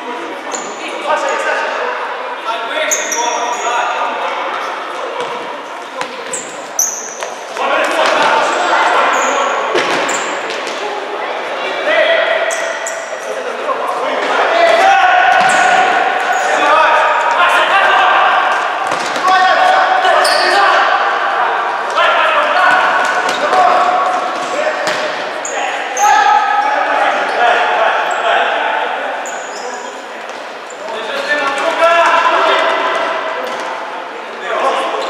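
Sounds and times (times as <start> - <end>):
players shouting: 7.6 - 29.6.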